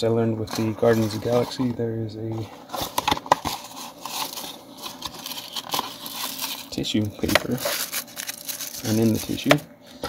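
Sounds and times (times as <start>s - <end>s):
tissue paper rustling: 2.4s - 9.5s.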